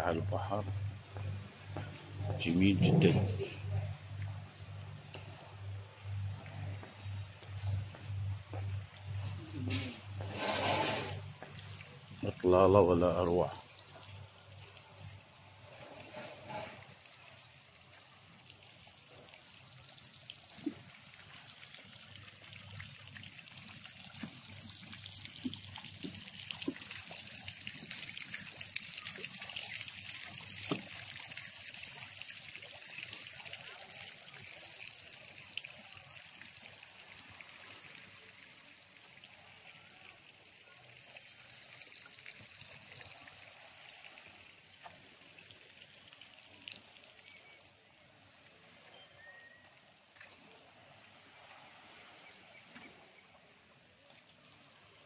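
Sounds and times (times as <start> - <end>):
water trickling: 0.0 - 55.0.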